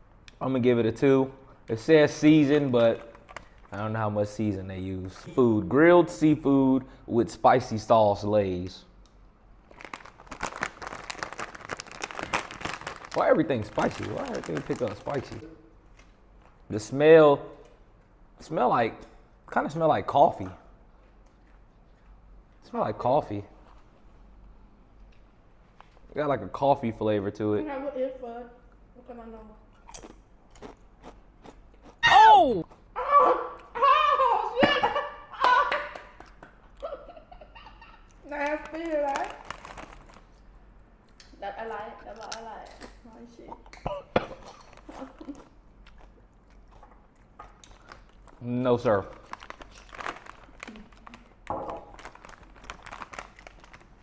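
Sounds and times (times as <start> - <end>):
chip bag crinkling: 2.3 - 3.8, 9.6 - 15.4, 38.2 - 40.5, 44.4 - 46.1, 47.6 - 54.0
man whimpering: 32.0 - 32.7.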